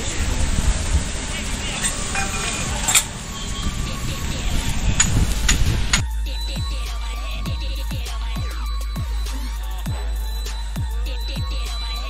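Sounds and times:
rain falling: 0.0 - 6.0
wind rumbling on microphone: 0.0 - 8.4.

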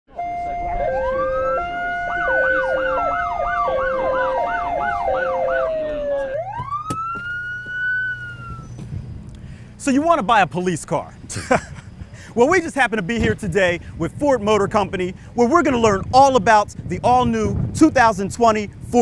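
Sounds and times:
police siren: 0.1 - 8.8.

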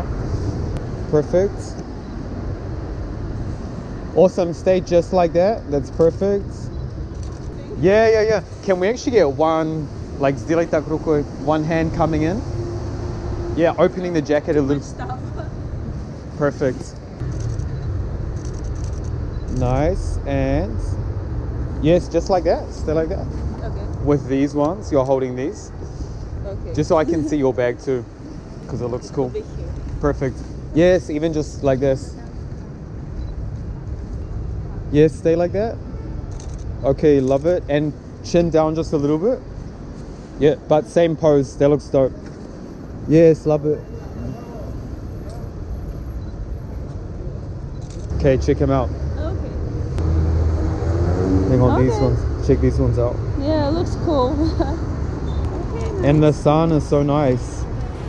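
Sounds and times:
street traffic rumble: 0.0 - 58.0.

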